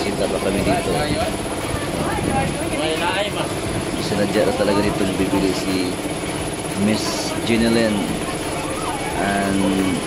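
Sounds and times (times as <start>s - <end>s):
people talking: 0.0s - 10.0s
steady engine-like hum: 0.0s - 10.0s.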